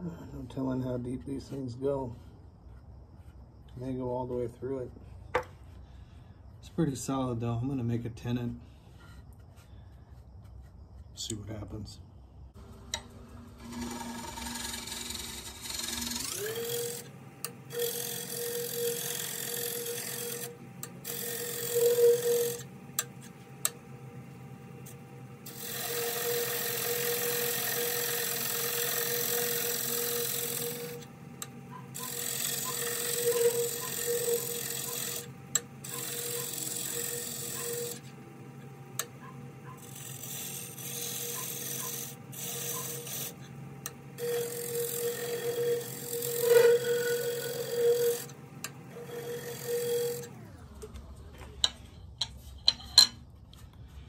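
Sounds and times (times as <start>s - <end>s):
turning tool scraping wood: 0.5s - 11.3s, 13.4s - 23.8s, 24.8s - 50.4s
wood lathe humming: 12.6s - 51.1s.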